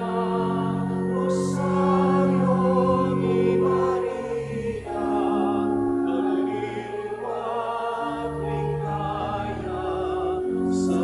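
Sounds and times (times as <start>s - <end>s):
church choir singing a hymn: 0.0s - 11.0s.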